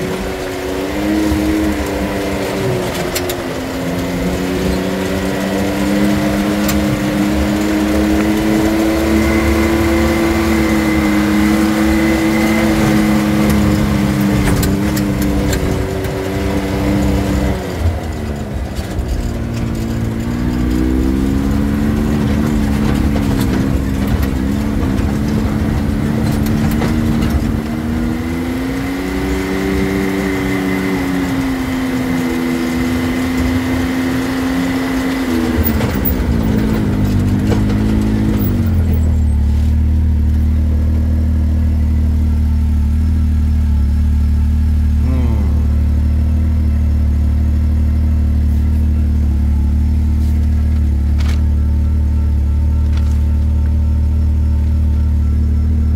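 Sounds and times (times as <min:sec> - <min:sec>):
vehicle engine running: 0:00.0 - 0:55.9.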